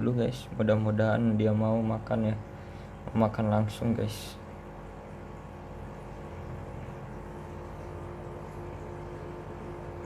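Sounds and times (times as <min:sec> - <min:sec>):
faint constant tones: 0:00.0 - 0:10.0.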